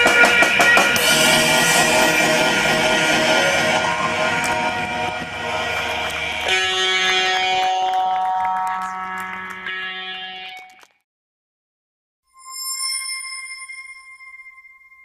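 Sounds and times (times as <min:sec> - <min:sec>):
electric guitar drone and feedback: 0:00.0 - 0:10.9.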